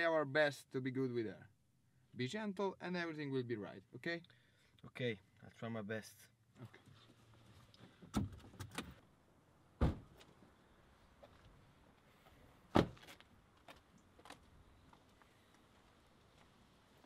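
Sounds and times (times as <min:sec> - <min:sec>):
car door slams: 0:09.8 - 0:10.2, 0:12.7 - 0:13.0.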